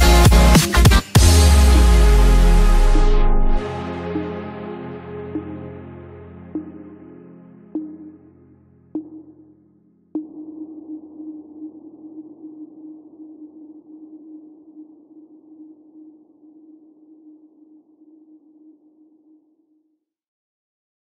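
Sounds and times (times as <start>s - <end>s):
low electronic tone: 1.2s - 9.4s.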